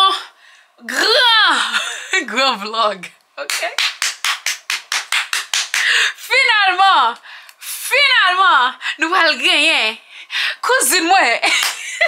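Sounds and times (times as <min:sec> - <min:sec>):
woman clapping hands: 0:03.5 - 0:06.0, 0:11.6 - 0:11.9.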